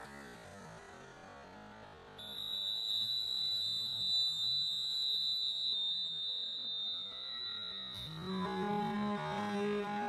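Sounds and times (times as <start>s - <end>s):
high-pitched electronic tone: 2.2s - 10.0s.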